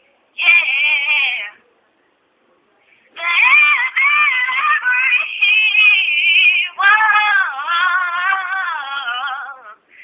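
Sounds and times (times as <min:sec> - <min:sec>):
woman singing unaccompanied: 0:00.4 - 0:01.6, 0:03.2 - 0:09.8.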